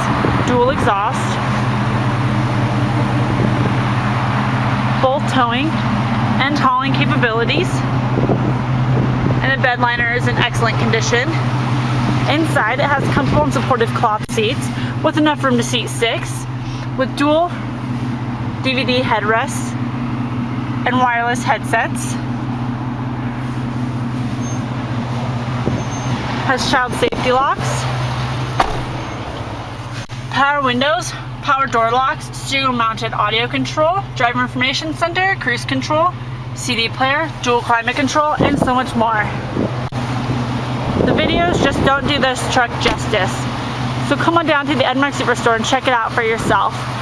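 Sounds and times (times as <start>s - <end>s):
truck engine idling: 0.0s - 47.0s.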